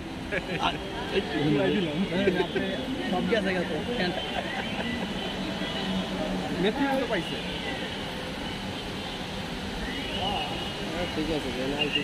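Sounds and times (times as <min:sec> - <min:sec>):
crowd noise: 0:00.0 - 0:12.0
traffic rumble: 0:00.0 - 0:12.0
people talking: 0:00.3 - 0:08.6, 0:10.0 - 0:12.0.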